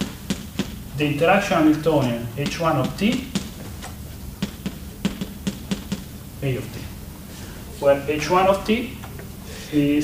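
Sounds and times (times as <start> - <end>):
chalk tapping on blackboard: 0.0 - 0.9, 2.0 - 6.2.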